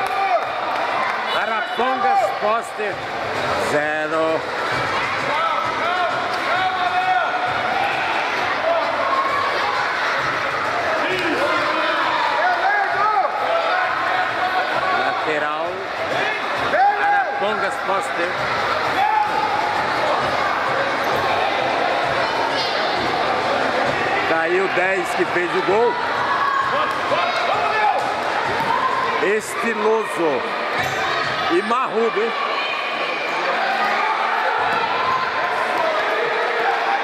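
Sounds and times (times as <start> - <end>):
voices of players and spectators: 0.0 - 37.0.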